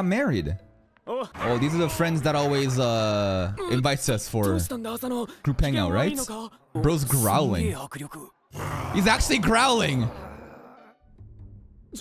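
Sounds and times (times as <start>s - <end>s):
character growling: 8.5s - 11.1s.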